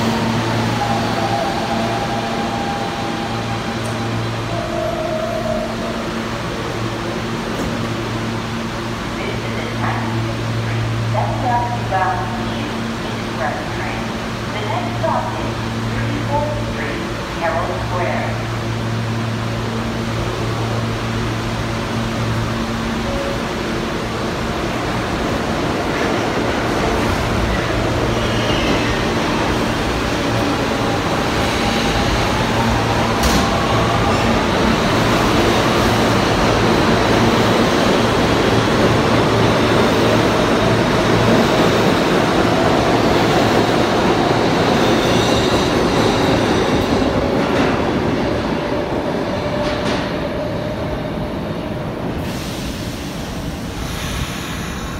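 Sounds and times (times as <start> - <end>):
subway train motors whining: 0.0 - 54.9
train humming: 0.0 - 54.9.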